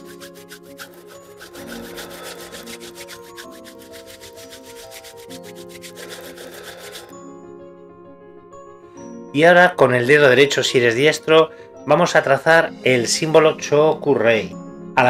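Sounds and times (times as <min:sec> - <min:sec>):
palms rubbing together: 0:00.0 - 0:07.2
soft background music: 0:00.0 - 0:15.0.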